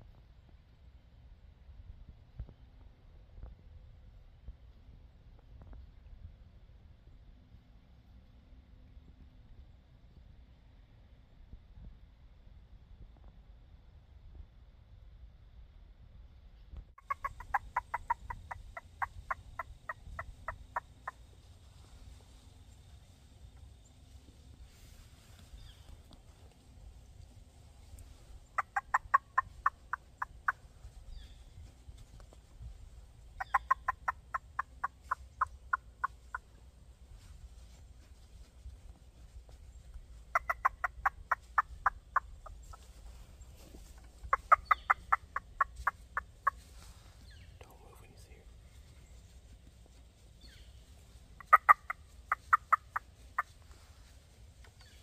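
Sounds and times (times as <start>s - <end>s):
squirrel call chattering: 17.0s - 21.2s, 28.5s - 31.4s, 33.4s - 36.5s, 40.3s - 42.8s, 44.0s - 46.6s, 51.4s - 53.6s.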